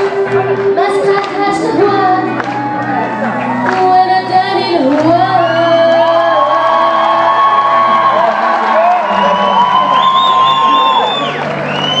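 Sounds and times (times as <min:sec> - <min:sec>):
live music with bending notes: 0:00.0 - 0:12.0
crowd cheering and whooping: 0:02.0 - 0:12.0.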